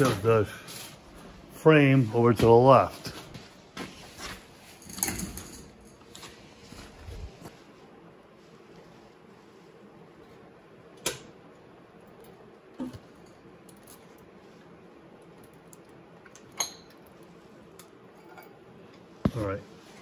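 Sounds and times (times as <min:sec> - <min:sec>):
faint steady hum: 0:00.0 - 0:20.0
metal clinks and knocks: 0:04.8 - 0:06.0.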